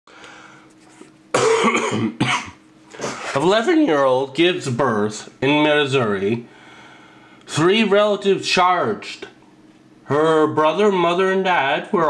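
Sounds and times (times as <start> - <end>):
faint room hum: 0.1 - 12.0
person coughing: 1.3 - 3.4.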